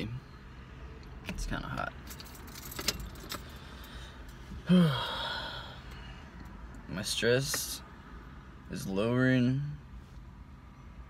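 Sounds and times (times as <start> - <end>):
man sighing: 4.6 - 6.2.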